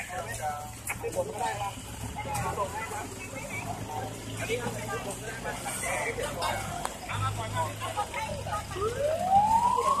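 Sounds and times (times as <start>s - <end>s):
voices nearby: 0.0s - 10.0s
emergency vehicle siren rising: 7.9s - 10.0s.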